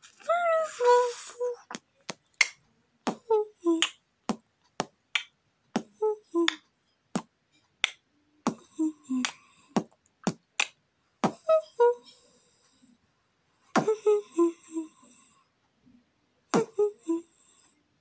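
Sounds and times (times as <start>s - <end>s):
boy beatboxing: 0.5s - 6.6s, 7.2s - 11.5s, 13.8s - 14.2s, 16.6s - 17.0s.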